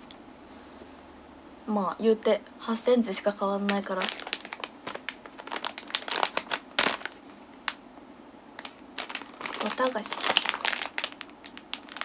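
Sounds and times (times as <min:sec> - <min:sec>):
plastic snack bag crinkling: 0:03.5 - 0:07.8, 0:08.6 - 0:12.0.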